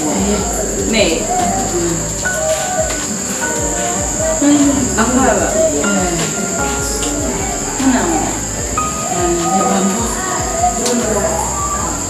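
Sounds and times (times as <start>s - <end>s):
insect chirring: 0.0s - 12.0s
music: 0.0s - 12.0s
voices: 0.0s - 12.0s.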